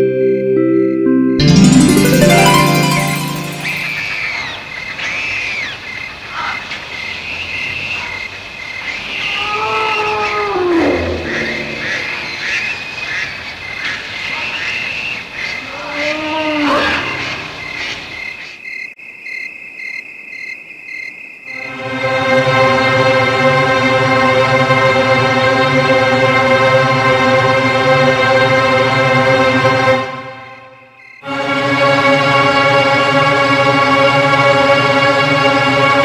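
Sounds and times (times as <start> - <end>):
rising and falling animal calls: 9.3 - 12.9
crickets chirping: 17.6 - 21.7, 30.8 - 31.2.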